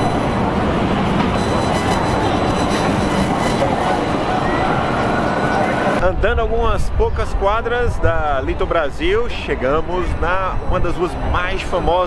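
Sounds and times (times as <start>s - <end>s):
traffic din: 0.0s - 12.0s.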